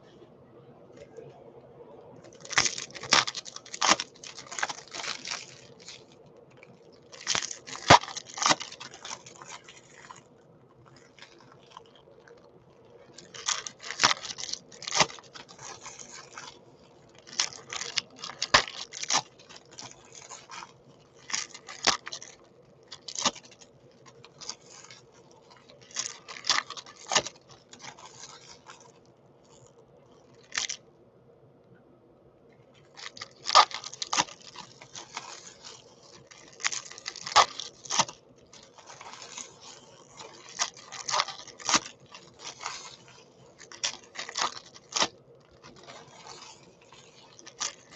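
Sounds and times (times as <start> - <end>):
foil wrappers tearing and crumpling: 2.2 - 30.8, 32.8 - 47.9.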